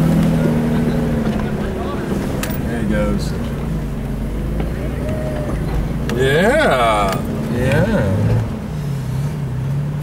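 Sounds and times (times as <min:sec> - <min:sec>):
vehicle engine running low revs: 0:00.0 - 0:10.0.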